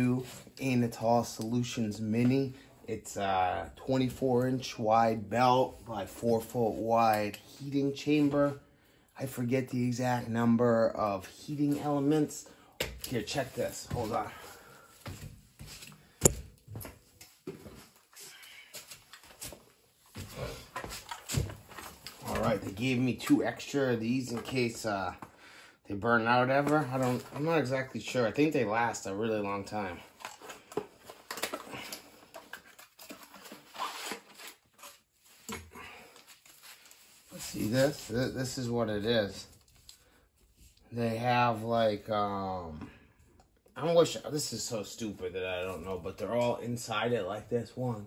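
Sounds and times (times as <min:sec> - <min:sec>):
knocks and rustles of handling: 0:11.6 - 0:25.3, 0:26.4 - 0:28.9, 0:29.7 - 0:38.2
footsteps indoors: 0:12.8 - 0:22.6.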